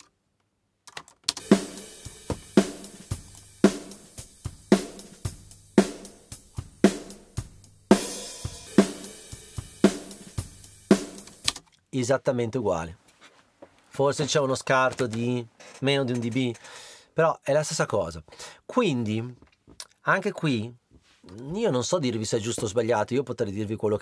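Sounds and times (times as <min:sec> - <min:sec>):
drum kit groove: 0:01.3 - 0:11.6
snare drum hits: 0:01.4 - 0:04.1
cymbal crash: 0:01.4 - 0:05.1.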